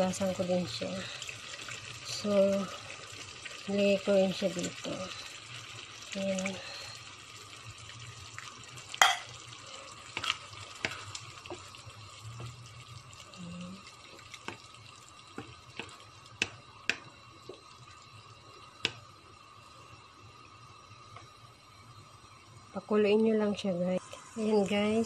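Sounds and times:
sauce boiling in a frying pan: 0.0 - 25.0.

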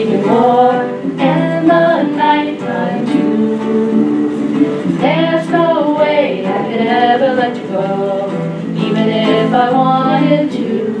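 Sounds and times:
ukulele: 0.0 - 11.0
woman singing into a microphone: 0.0 - 11.0.

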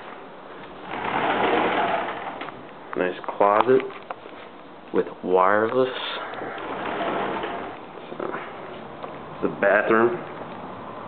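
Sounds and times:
closet door sliding open: 0.8 - 2.6, 6.3 - 8.6.

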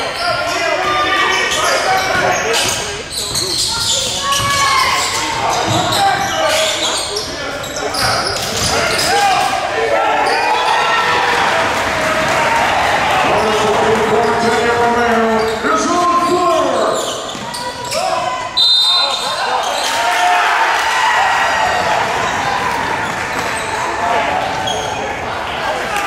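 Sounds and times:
crowd voices: 0.0 - 26.0
players shouting: 3.7 - 26.0
referee's whistle: 18.6 - 19.4.

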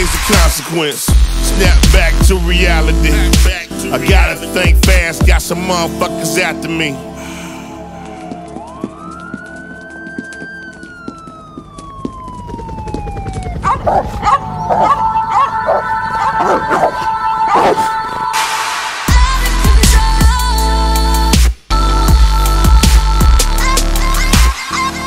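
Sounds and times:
siren wail: 7.0 - 17.8
dogs barking: 13.6 - 18.3.

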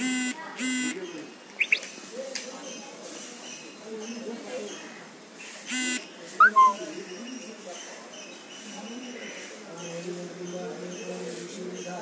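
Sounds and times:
bird chirping: 1.0 - 2.0, 6.4 - 7.0.

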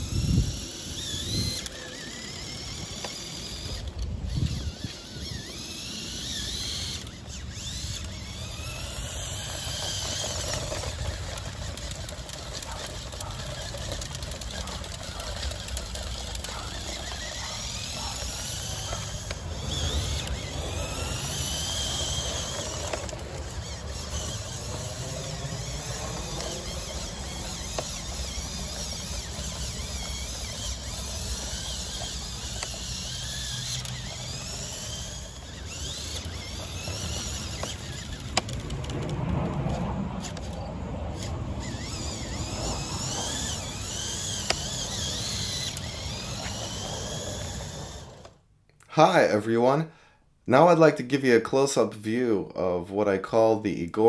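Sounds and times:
toy car motors whining: 0.0 - 48.4.

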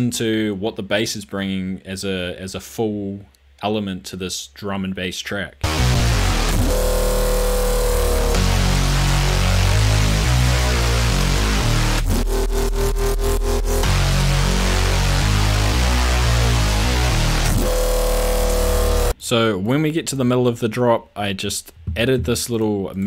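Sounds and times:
pulsing screamer bass note: 5.6 - 19.1
drum and bass music: 5.6 - 19.2.

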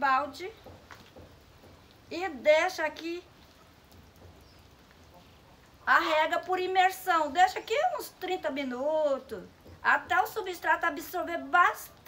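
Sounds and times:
woman speaking: 0.0 - 0.6, 2.1 - 3.3, 5.8 - 12.0.

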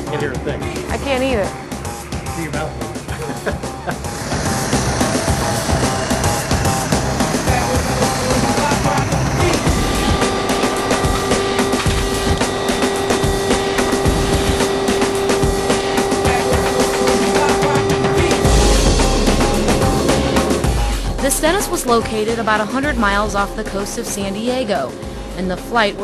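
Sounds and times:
steady hum: 0.0 - 26.0
turboprop aircraft engines: 0.0 - 26.0.

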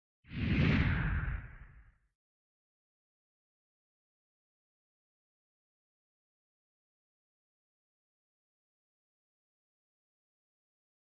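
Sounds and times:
logo whoosh: 0.3 - 2.0.

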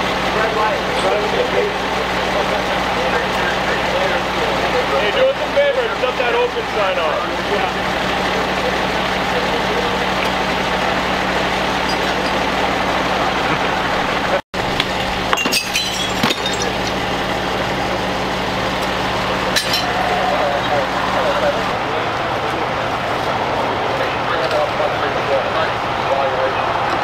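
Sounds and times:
engine idling: 0.0 - 27.0
metal or glass clinks: 19.6 - 19.9.

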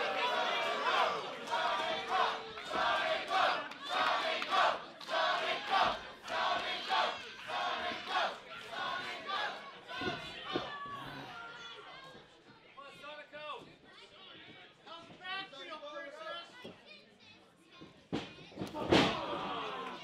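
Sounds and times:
crowd chanting in unison: 0.0 - 11.3.

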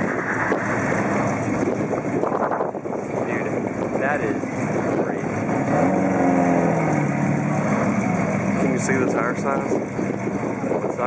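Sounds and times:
car engine rolling by: 0.0 - 11.0.

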